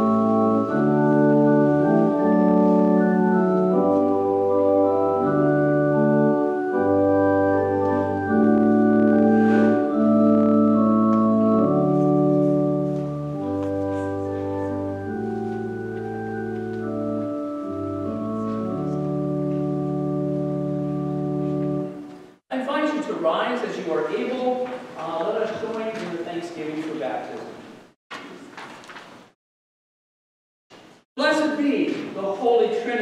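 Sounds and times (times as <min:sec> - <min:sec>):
organ playing slow chords: 0:00.0 - 0:22.4.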